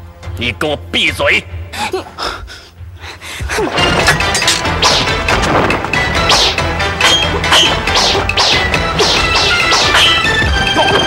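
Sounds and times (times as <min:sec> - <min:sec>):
dramatic fight music: 0:03.6 - 0:11.0.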